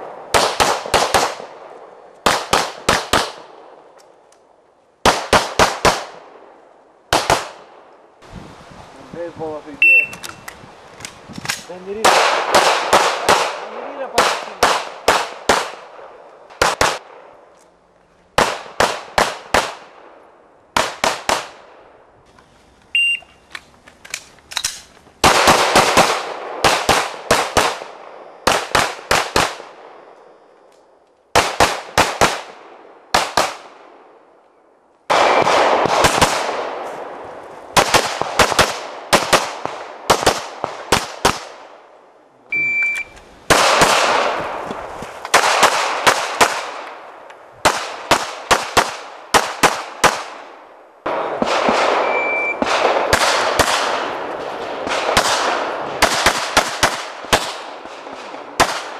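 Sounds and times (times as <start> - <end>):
rapid pistol shots: 0.2 - 1.6, 2.2 - 3.6, 7.1 - 7.7, 11.9 - 17.2, 18.4 - 20.0, 20.8 - 21.6, 25.2 - 29.8, 31.3 - 33.9, 35.1 - 36.8, 37.8 - 41.6, 43.5 - 44.5, 47.6 - 50.4, 51.1 - 58.9
shot timer beep: 9.8 - 10.3, 23.0 - 23.4, 42.5 - 43.2, 52.0 - 52.6.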